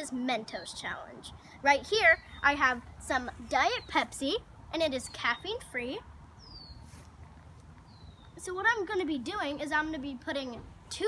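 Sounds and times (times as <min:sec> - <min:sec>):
bird chirping: 0:00.5 - 0:08.9.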